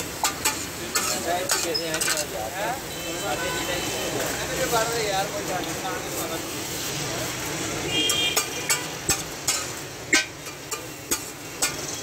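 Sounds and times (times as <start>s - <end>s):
food sizzling: 0.0s - 12.0s
metal spatulas clacking on griddle: 0.2s - 2.3s, 8.0s - 12.0s.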